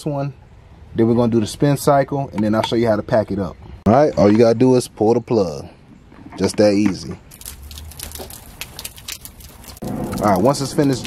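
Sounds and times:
water draining from hose: 7.3s - 11.0s.

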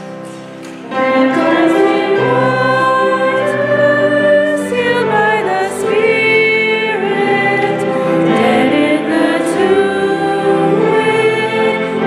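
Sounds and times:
women singing a worship song: 0.9s - 12.0s.

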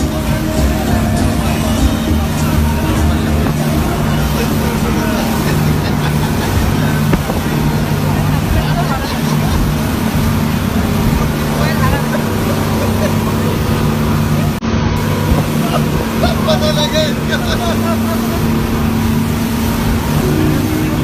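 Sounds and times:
passengers talking: 0.0s - 21.0s
rushing water: 0.0s - 21.0s
rushing wind: 0.0s - 21.0s
speedboat engine droning: 0.0s - 21.0s.

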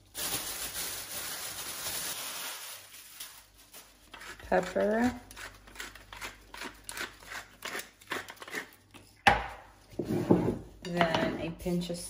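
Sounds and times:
plastic bag crinkling: 0.0s - 4.1s.

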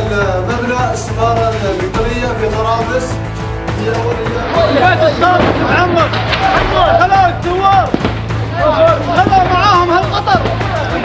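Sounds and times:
background music: 0.0s - 11.0s
men shouting: 3.8s - 11.0s.

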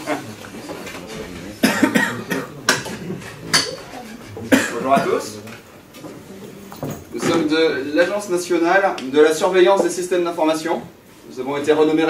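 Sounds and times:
person coughing: 1.6s - 3.2s, 4.4s - 5.3s.

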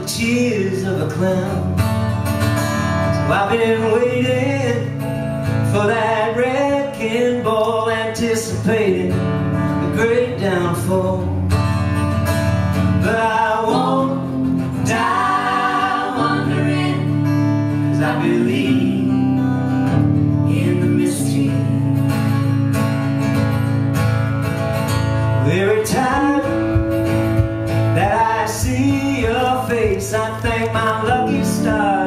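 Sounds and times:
bass guitar line: 0.0s - 32.0s
strummed acoustic guitars: 0.0s - 32.0s
person singing: 13.0s - 17.2s.

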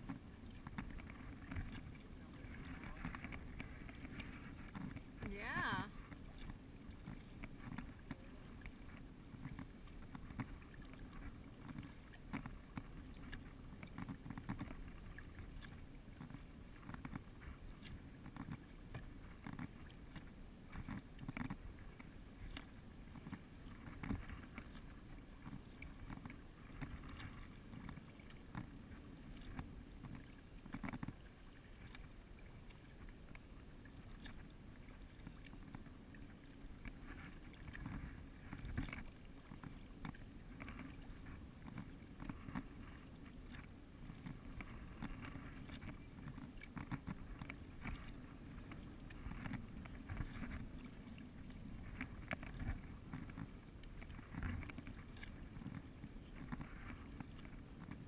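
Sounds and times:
kayak paddle splashing: 0.0s - 58.0s
low rumble of wind and water: 0.0s - 58.0s.

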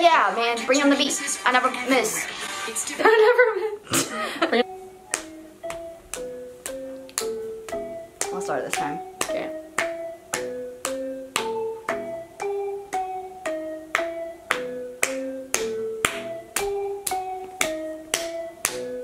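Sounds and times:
instrumental hip-hop beat: 4.6s - 19.0s.

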